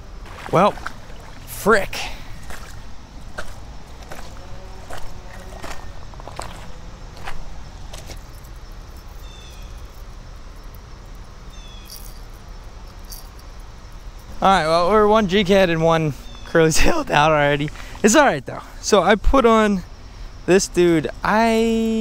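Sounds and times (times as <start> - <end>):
footsteps on gravel: 2.2 - 8.6.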